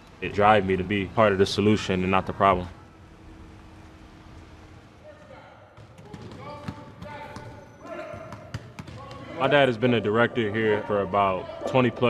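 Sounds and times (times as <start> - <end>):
basketball bouncing on hard floor: 5.8 - 7.6, 8.2 - 9.2.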